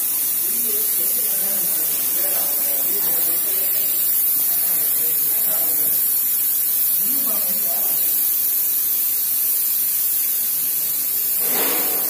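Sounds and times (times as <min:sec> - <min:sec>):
paint spray gun hissing: 0:00.0 - 0:12.0.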